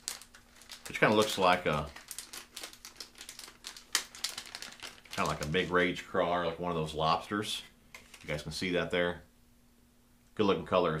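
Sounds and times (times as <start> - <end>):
plastic package crinkling: 0.0 - 5.9, 7.9 - 8.4.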